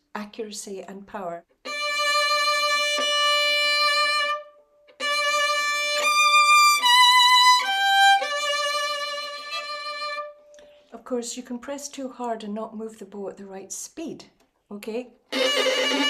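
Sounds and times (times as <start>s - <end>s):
bowed violin with vibrato: 1.7s - 10.4s, 15.3s - 16.0s.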